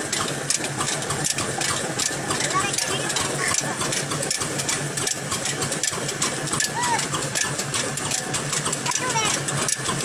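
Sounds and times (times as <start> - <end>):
diesel engine clattering: 0.0 - 10.0.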